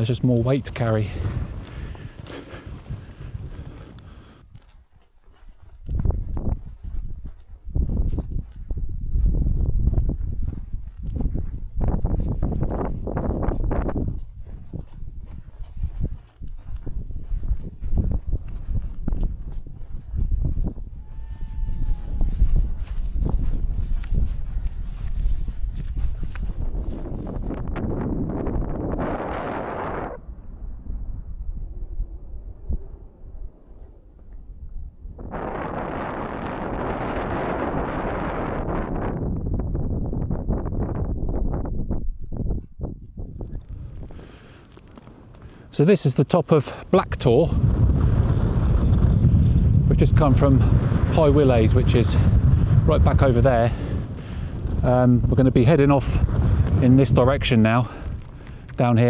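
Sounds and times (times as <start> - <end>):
wind buffeting microphone: 0.0 - 45.7, 46.8 - 59.0.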